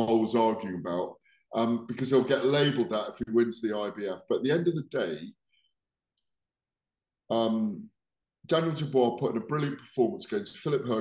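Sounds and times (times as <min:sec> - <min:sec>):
man speaking: 0:00.0 - 0:05.3, 0:07.3 - 0:11.0.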